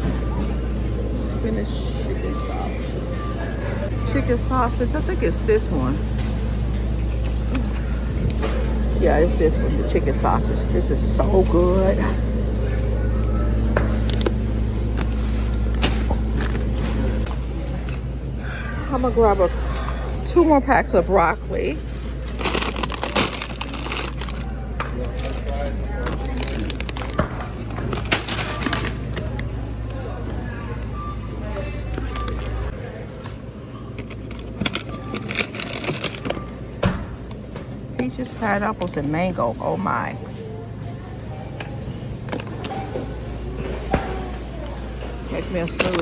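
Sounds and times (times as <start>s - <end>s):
supermarket background hum: 0.0s - 46.0s
plastic bags crinkling: 22.2s - 29.4s, 33.9s - 36.5s
plastic packaging clicks: 22.3s - 29.5s, 34.0s - 36.4s.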